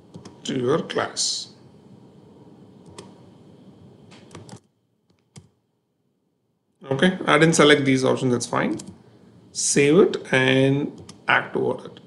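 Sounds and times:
computer keyboard keystrokes: 2.9 - 3.1, 4.1 - 5.6, 8.7 - 9.0.

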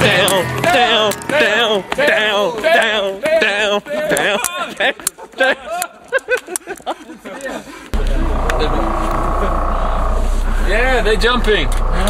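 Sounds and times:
people talking: 0.0 - 6.0, 7.1 - 12.0
loud low rumble: 8.0 - 12.0.

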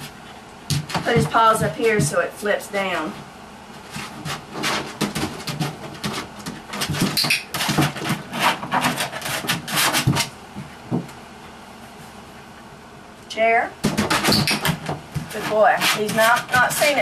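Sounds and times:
paws scrabbling on plastic: 0.0 - 2.3, 2.9 - 12.6, 13.8 - 17.0.

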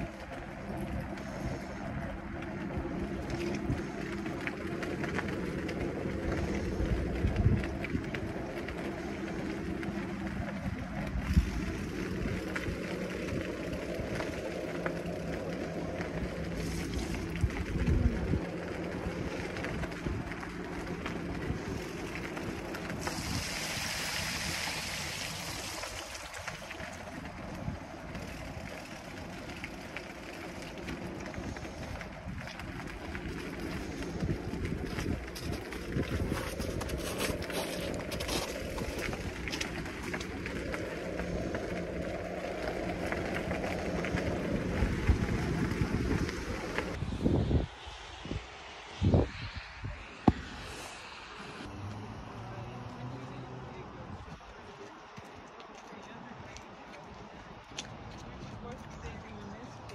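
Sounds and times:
bike tyres rolling on wet pavement: 0.0 - 59.9
wind rumble on microphone: 0.0 - 59.9.

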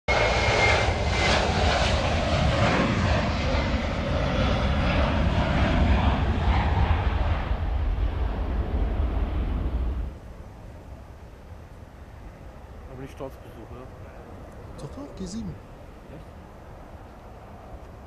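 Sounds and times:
jet engines rumbling: 0.1 - 18.0.

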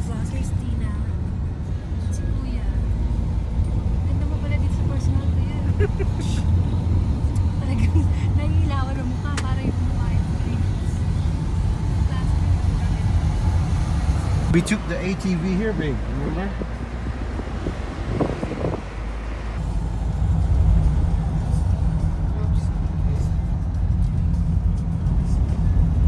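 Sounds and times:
van engine and road rumble: 0.0 - 26.0.

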